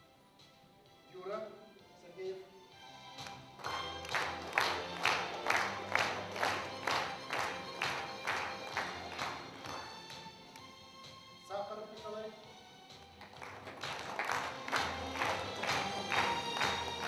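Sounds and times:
quiet background music: 0.0s - 17.0s
audience clapping in rhythm: 3.2s - 10.8s, 12.9s - 17.0s.

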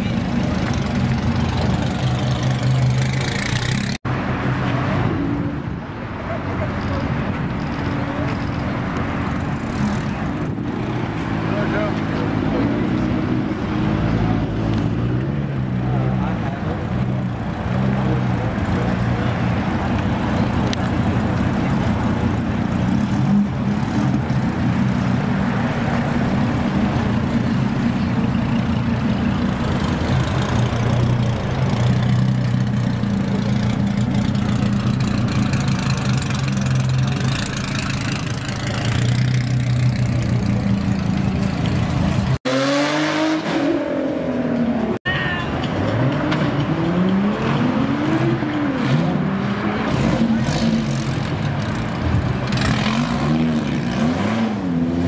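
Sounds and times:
car engines idling: 0.0s - 4.0s, 14.7s - 42.4s
car engine revving: 21.4s - 45.0s.

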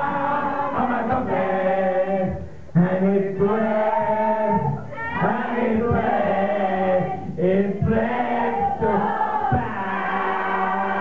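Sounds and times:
men and women singing together: 0.0s - 11.0s.

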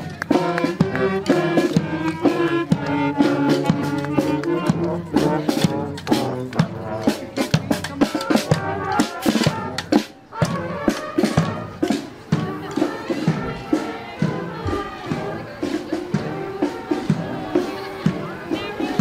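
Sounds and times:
drum beats: 0.0s - 19.0s
marching band playing: 0.0s - 19.0s.

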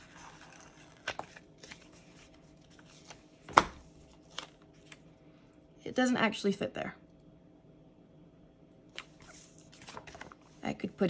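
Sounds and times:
paper rustling: 0.0s - 5.1s, 8.9s - 10.6s.

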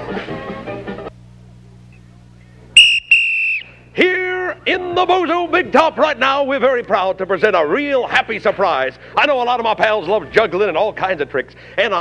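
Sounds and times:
low steady hum: 0.5s - 12.0s
shrill whistle blast: 2.8s - 3.8s.

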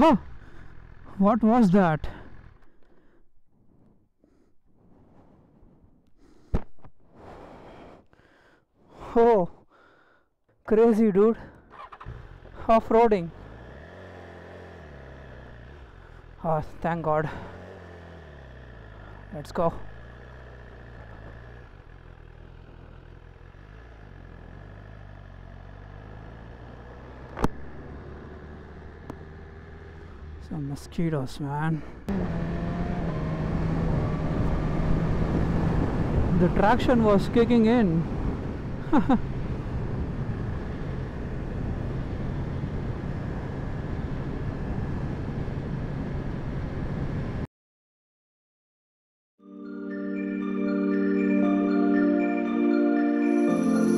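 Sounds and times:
man breathing and sighing: 0.2s - 1.1s, 2.1s - 10.6s
motorcycle engine pulling away: 11.6s - 12.7s, 13.3s - 16.4s, 17.3s - 19.3s, 19.9s - 30.7s, 32.1s - 36.4s.

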